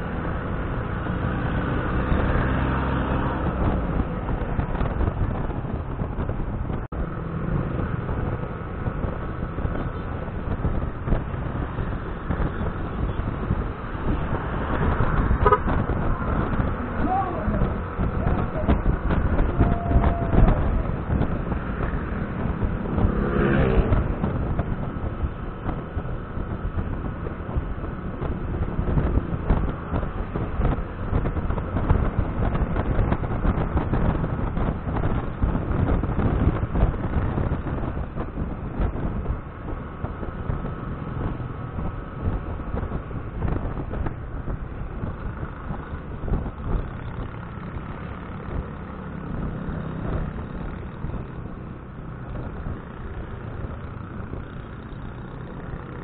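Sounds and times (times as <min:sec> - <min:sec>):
scooter engine and tyre noise: 0:00.0 - 0:56.0
wind rush on microphone: 0:00.0 - 0:56.0.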